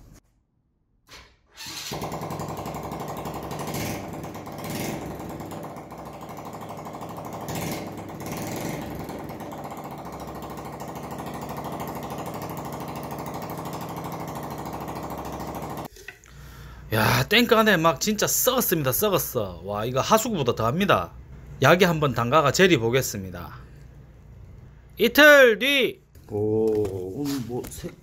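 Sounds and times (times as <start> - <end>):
small engine idling: 1.9 - 15.9.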